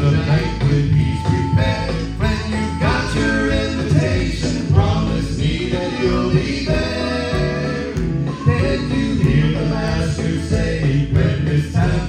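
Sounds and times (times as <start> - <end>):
instrumental accompaniment with bass: 0.0 - 12.0
male vocal trio singing in harmony: 0.0 - 12.0.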